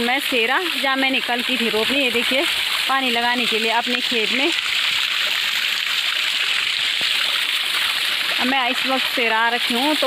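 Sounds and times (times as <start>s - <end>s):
water pouring and splashing on stones: 0.0s - 10.0s.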